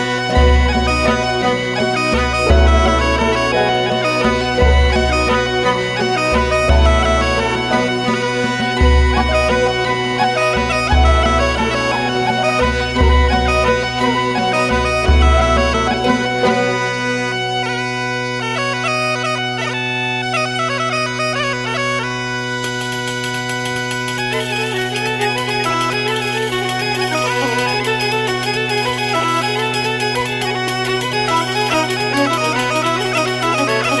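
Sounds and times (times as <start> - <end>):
bagpipe melody over drone: 0.0 - 34.0.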